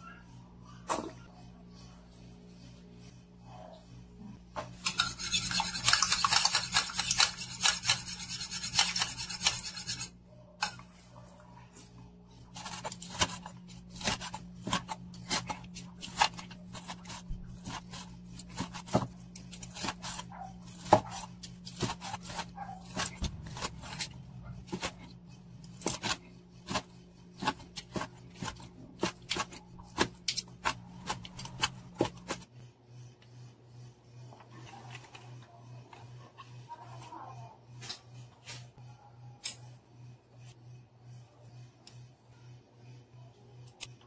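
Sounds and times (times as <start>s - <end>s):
low steady hum: 0.0s - 44.0s
utensil stirring in ceramic bowl: 4.8s - 10.2s.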